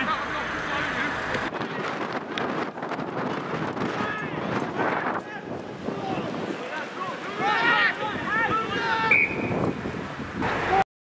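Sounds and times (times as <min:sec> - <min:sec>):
wind buffeting microphone: 0:01.2 - 0:10.8
distant players shouting: 0:03.8 - 0:09.7.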